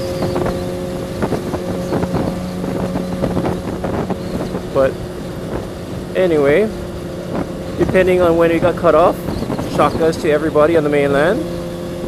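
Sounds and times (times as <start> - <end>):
wind noise on microphone: 0.0 - 11.8
motorcycle engine cruising: 0.0 - 12.0.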